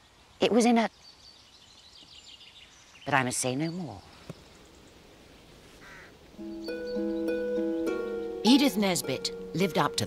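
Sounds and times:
faint woodland ambience: 0.0s - 10.0s.

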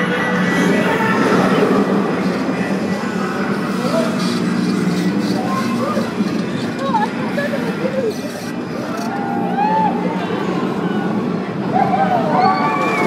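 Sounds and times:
riders yelling and screaming: 0.0s - 13.0s
roller coaster train rumbling on track: 0.0s - 13.0s.

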